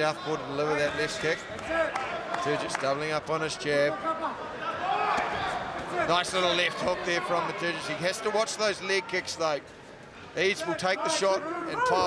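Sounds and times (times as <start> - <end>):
crowd murmur in a hall: 3.2 - 12.0.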